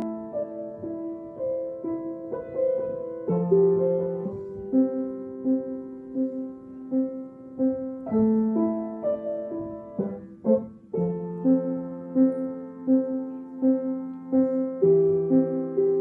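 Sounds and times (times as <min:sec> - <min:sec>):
slow gentle piano: 0:00.0 - 0:16.0.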